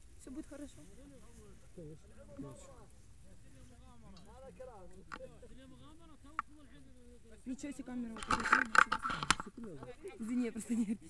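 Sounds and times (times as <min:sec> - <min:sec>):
soft talking voices: 0:00.0 - 0:11.0.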